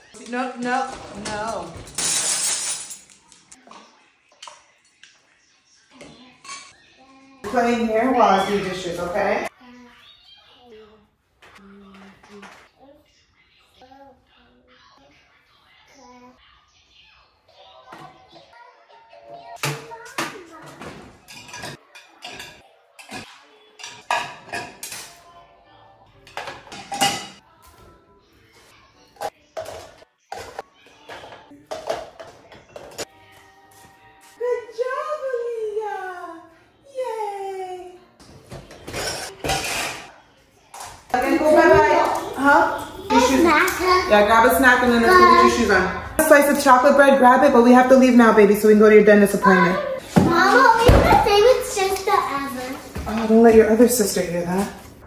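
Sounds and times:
dishes clinking: 6.0s - 6.8s, 19.6s - 25.2s, 26.2s - 27.4s, 38.6s - 40.1s.

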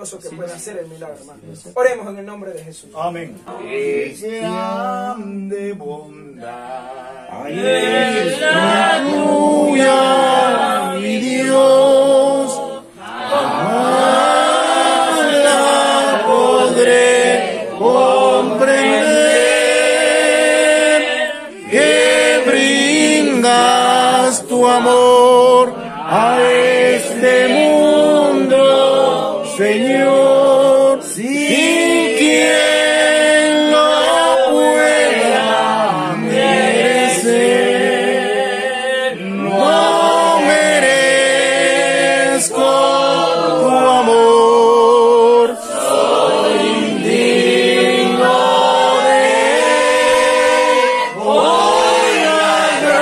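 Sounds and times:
men singing unaccompanied: 3.5s - 53.0s.

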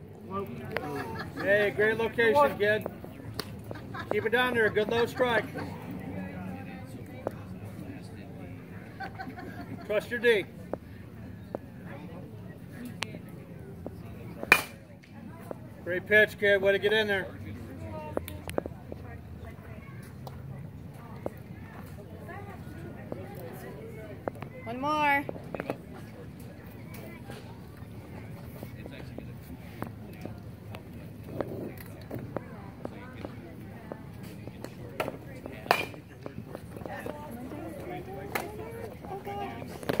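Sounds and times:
murmur of spectators' voices: 0.0s - 40.0s.

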